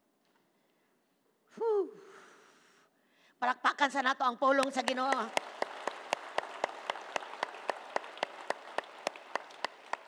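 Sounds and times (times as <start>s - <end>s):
hands clapping a steady beat: 4.6s - 10.0s
congregation applauding: 4.7s - 10.0s.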